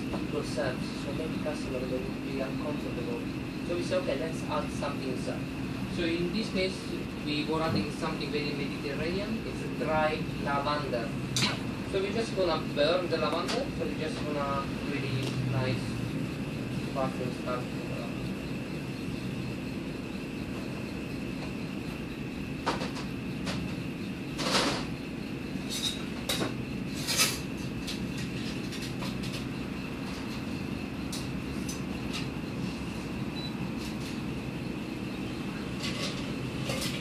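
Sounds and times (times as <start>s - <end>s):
faint high whine: 0.0s - 37.0s.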